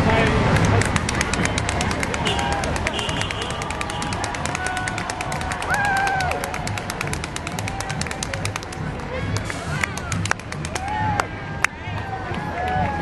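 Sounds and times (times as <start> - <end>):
crowd voices: 0.0 - 13.0
music with fast clicking beat: 0.2 - 13.0.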